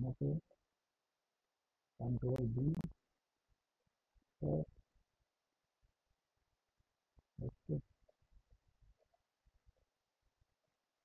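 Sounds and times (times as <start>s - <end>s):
man speaking a word: 0.0s - 0.4s, 2.0s - 2.9s, 4.4s - 4.7s.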